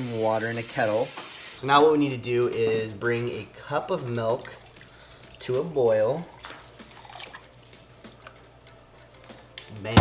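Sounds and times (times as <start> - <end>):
milk trickling into cup: 4.3 - 7.8.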